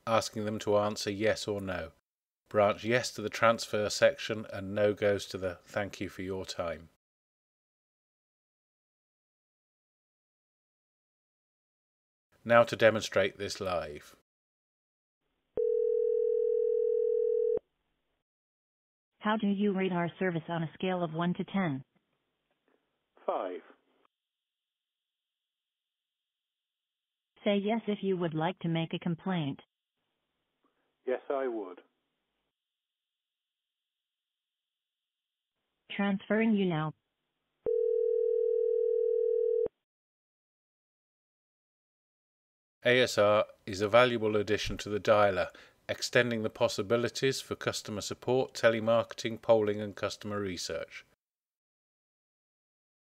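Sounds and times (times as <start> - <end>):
telephone ringback tone: 15.6 - 17.6, 37.7 - 39.7.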